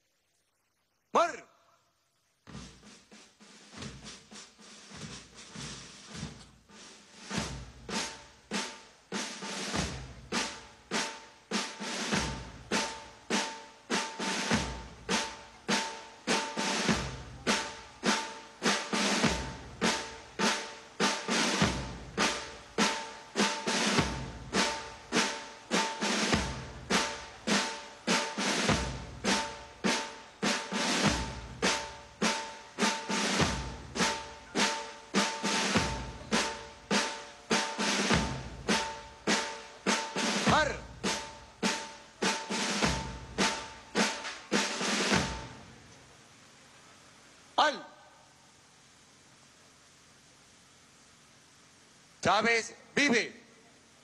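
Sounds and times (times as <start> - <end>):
rapid snare drum strokes: 2.4 - 45.9.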